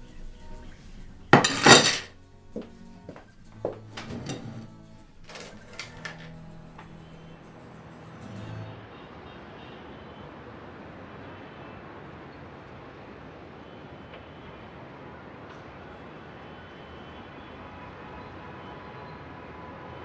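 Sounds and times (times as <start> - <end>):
quiet background music: 0.0 - 16.2
coins clinking on a wooden table: 0.9 - 7.5.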